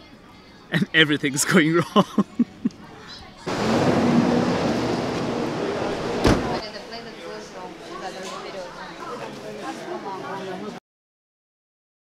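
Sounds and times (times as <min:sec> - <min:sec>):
city street traffic: 0:03.4 - 0:06.7
low engine hum: 0:03.5 - 0:06.6.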